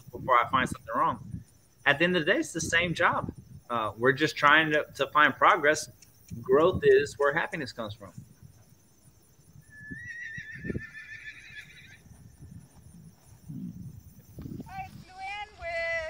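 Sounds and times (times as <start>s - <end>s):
horse whinnying: 9.6s - 12.0s
soft low thumps: 12.0s - 14.7s.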